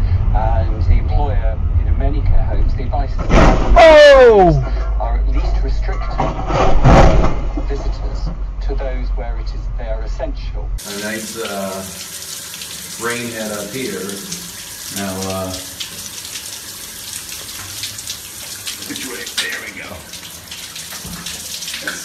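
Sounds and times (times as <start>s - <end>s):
people talking: 0.0s - 6.3s, 7.6s - 12.0s, 13.0s - 15.7s, 18.7s - 20.1s
loud shout falling in pitch: 3.8s - 4.6s
shower water running: 10.8s - 22.0s.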